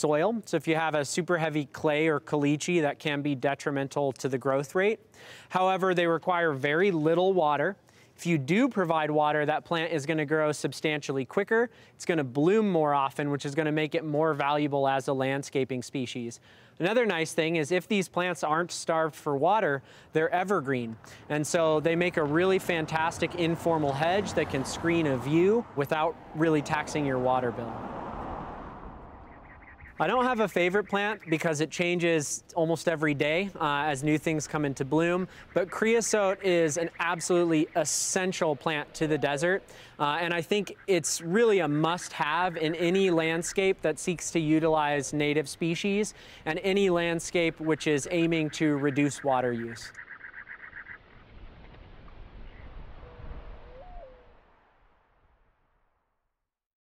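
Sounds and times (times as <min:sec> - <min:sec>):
outdoor background noise: 0:00.0 - 0:56.2
low bird call: 0:28.9 - 0:31.6, 0:35.2 - 0:40.0, 0:47.6 - 0:54.7.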